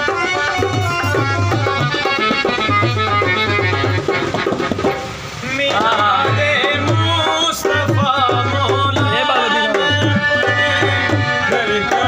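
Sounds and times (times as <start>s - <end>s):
hand drum beat: 0.0s - 12.0s
harmonium melody: 0.0s - 12.0s.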